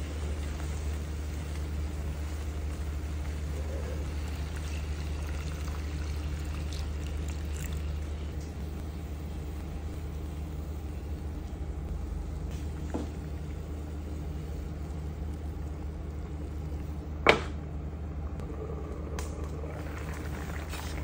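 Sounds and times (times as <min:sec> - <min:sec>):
water pouring into a pan: 0:03.6 - 0:08.1
steady low rumble: 0:07.0 - 0:21.0.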